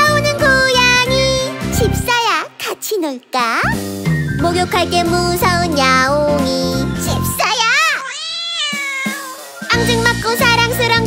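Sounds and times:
children's song music with beat: 0.0 - 7.7, 9.0 - 11.0
cat meowing: 7.4 - 9.6.

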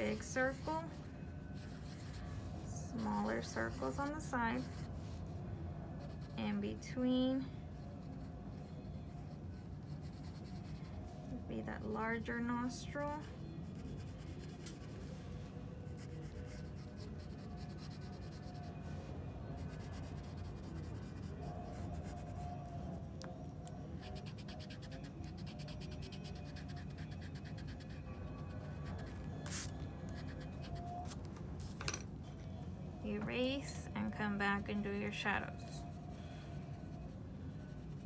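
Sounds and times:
pencil scratching on paper: 0.0 - 5.2, 7.7 - 11.0, 13.2 - 15.1, 15.9 - 18.7, 19.6 - 22.5, 24.0 - 30.9
low room hum: 0.0 - 38.0.

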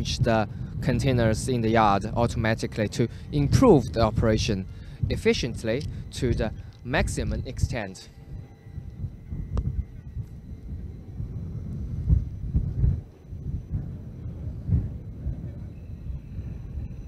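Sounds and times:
wind buffeting microphone: 0.0 - 17.0
faint high-pitched tones: 0.9 - 17.0.

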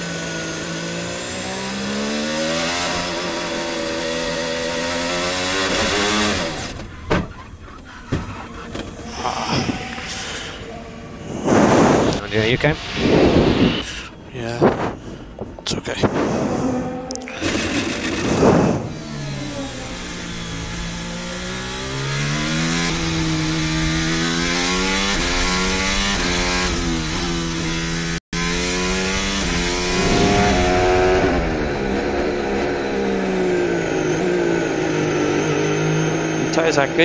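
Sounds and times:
racing car engine through gear changes: 0.0 - 14.0, 15.8 - 37.0
loud rough rushing noise: 9.0 - 36.4.

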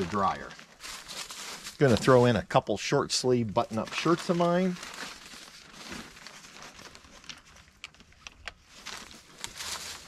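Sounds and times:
clothes and fabric cover rustling: 0.0 - 10.0.

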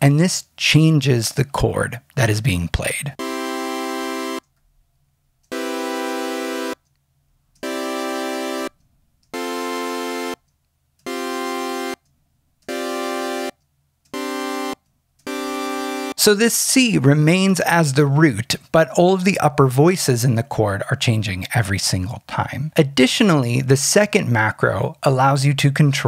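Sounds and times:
sawtooth synthesizer chords: 3.2 - 4.5, 5.5 - 6.9, 7.6 - 12.0, 12.6 - 17.0.

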